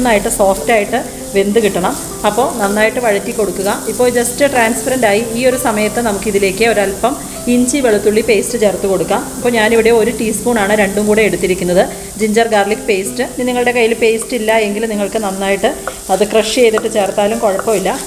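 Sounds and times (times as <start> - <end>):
wooden spatula stirring: 0.0 - 6.7, 14.0 - 18.0
onions sizzling in oil: 0.0 - 18.0.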